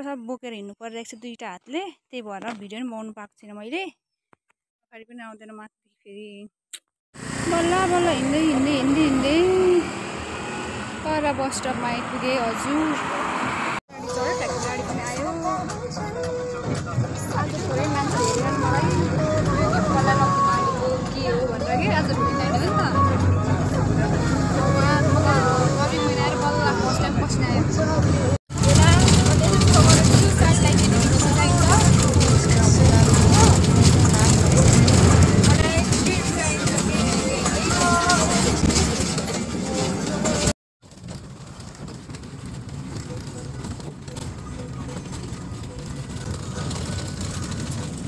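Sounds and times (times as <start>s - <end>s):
woman speaking: 0.0s - 4.0s, 4.9s - 6.5s, 7.5s - 10.0s, 11.0s - 13.2s
bus engine and road rumble: 7.2s - 48.0s
street traffic: 7.2s - 48.0s
background voices: 11.0s - 40.5s.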